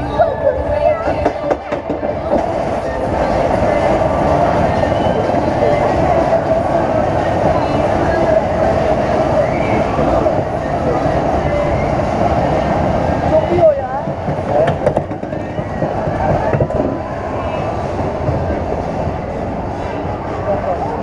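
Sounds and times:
roller coaster wheels rumbling: 0:00.0 - 0:21.0
sharp track clacks: 0:14.0 - 0:16.9.

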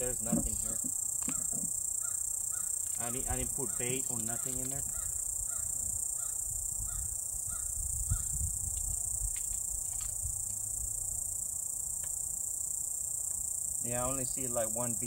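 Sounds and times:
insects droning in trees: 0:00.0 - 0:15.0
light knocks on wooden frame: 0:00.2 - 0:01.7.

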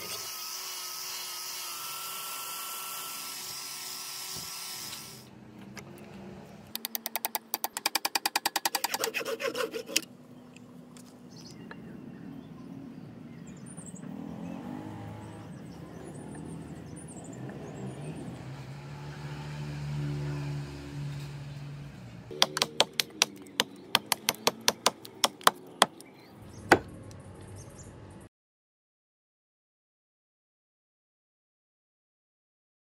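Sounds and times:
hatchet chopping wood: 0:06.8 - 0:10.0, 0:22.3 - 0:26.1, 0:26.7 - 0:26.9.

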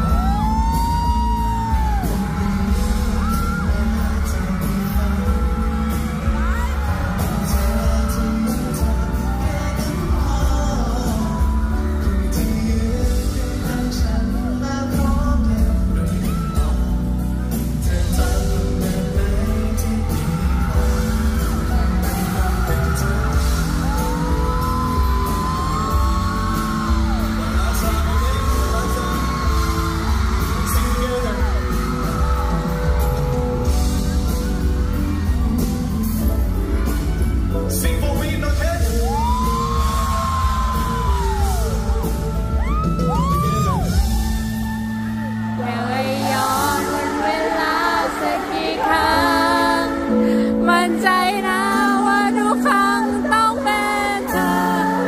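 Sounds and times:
audience yelling: 0:00.0 - 0:14.0, 0:16.0 - 0:50.2
live band with heavy bass: 0:00.0 - 0:55.0
man singing: 0:00.0 - 0:55.0.

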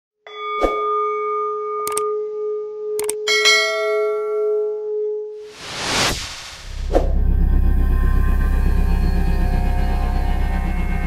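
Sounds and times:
rising whoosh: 0:05.4 - 0:08.8.

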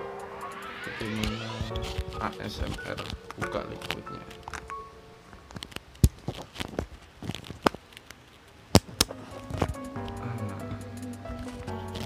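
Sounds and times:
background music: 0:00.0 - 0:05.4, 0:09.0 - 0:12.0.

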